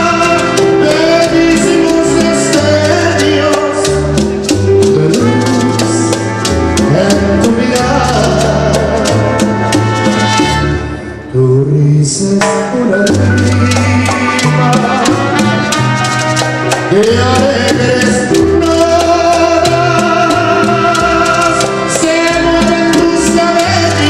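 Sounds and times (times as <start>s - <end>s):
maracas shaking: 0.0s - 10.5s, 13.0s - 24.0s
bass line: 0.0s - 24.0s.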